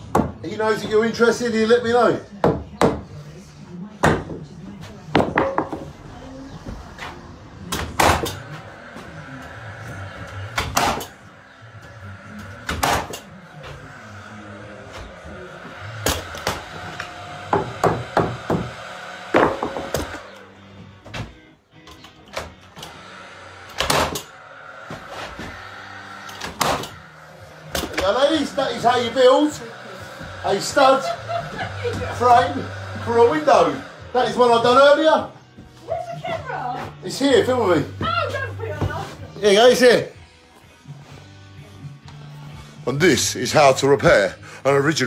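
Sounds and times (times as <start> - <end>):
faint music: 0.0 - 45.0
nails hammered into timber: 17.5 - 18.7.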